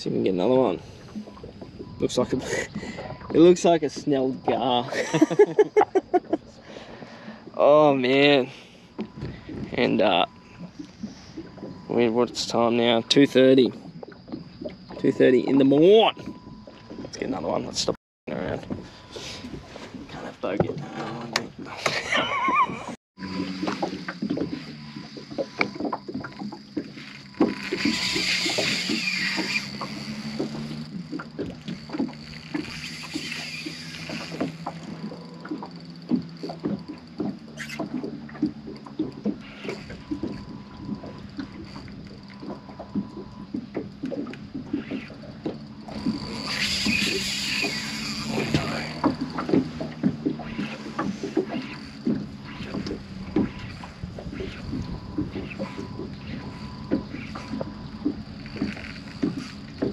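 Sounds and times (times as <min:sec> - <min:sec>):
small ticks and knocks: 0:09.0 - 0:17.3, 0:23.4 - 0:59.9
steady low hum: 0:18.3 - 0:59.9.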